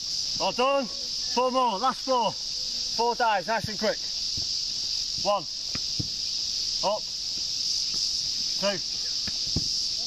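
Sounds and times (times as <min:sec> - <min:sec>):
insect chorus drone: 0:00.0 - 0:10.0.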